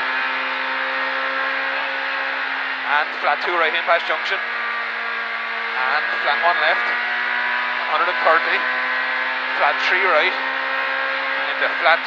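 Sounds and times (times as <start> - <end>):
car engine from inside cabin: 0.0 - 12.0.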